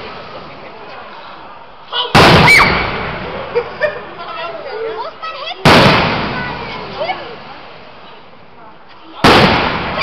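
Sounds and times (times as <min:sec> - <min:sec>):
firework shell bursting bang: 0:02.1 - 0:03.3, 0:05.6 - 0:07.0, 0:09.2 - 0:10.0.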